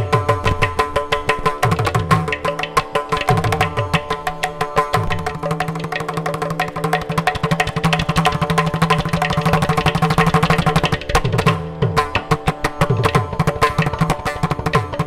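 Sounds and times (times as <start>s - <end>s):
fast hand drum and clay pot percussion: 0.0s - 15.0s.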